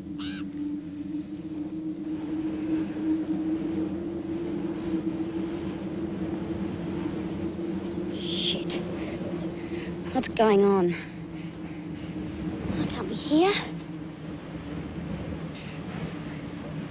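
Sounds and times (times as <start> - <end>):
low droning tone: 0.0 - 16.9
soft rumble: 0.0 - 16.9.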